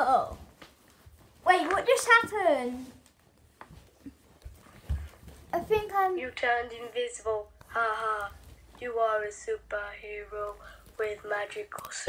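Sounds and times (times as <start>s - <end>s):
thumps and rustles on a bed: 0.1s - 6.2s.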